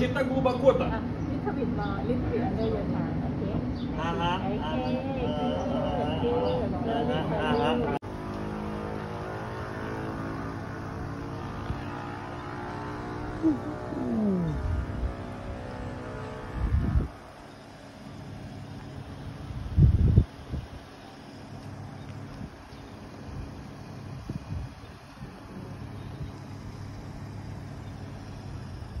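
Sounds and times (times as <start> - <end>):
vehicle engine humming: 0.0 - 29.0
wind buffeting microphone: 10.9 - 17.4, 19.3 - 20.9, 22.1 - 26.5.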